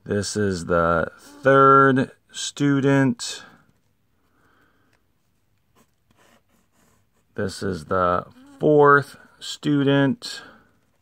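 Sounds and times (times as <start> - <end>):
pen scratching on paper: 5.7 - 7.4.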